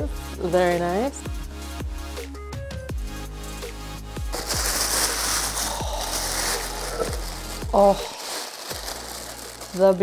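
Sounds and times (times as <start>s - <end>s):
tissue paper crinkling: 4.3s - 10.0s.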